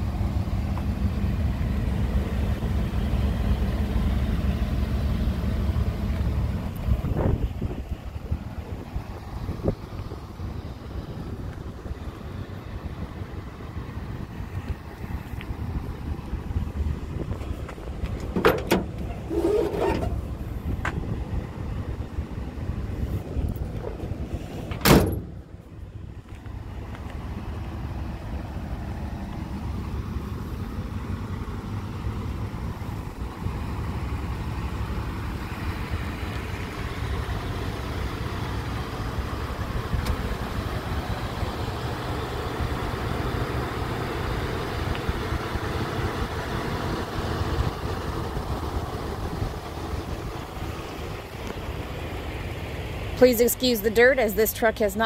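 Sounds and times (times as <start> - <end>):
wind rumble on microphone: 6.6 - 25.9.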